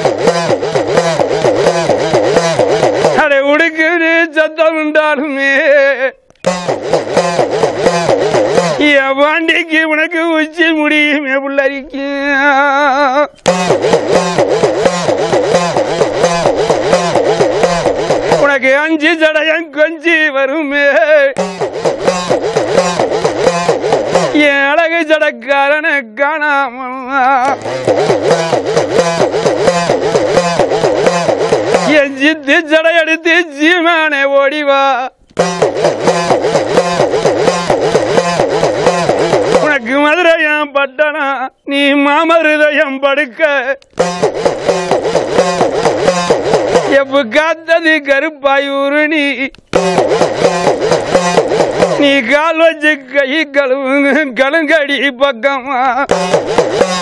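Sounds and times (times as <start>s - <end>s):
hourglass hand drum pitch swooping: 0.0s - 3.2s, 6.5s - 8.9s, 13.5s - 18.5s, 21.4s - 24.4s, 27.6s - 32.0s, 35.4s - 39.7s, 44.0s - 47.0s, 49.8s - 52.1s, 56.1s - 57.0s
person singing: 31.7s - 34.0s.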